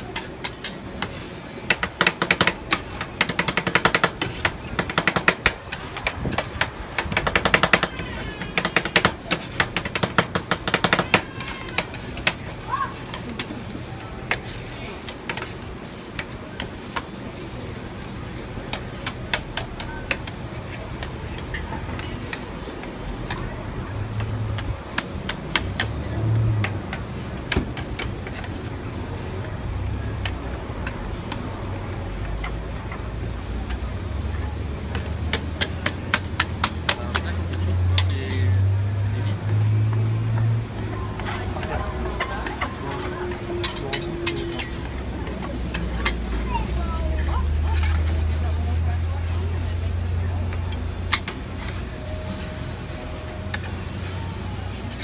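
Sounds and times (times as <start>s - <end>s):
spatula scraping: 41.2s - 46.4s, 47.4s - 55.0s
metal spatulas tapping on steel plate: 42.2s - 44.8s.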